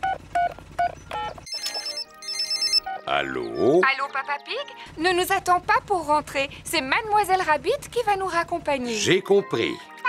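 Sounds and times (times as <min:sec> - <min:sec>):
phone keypad beep: 0:00.0 - 0:03.1
electronic trilling ringtone: 0:00.9 - 0:03.8.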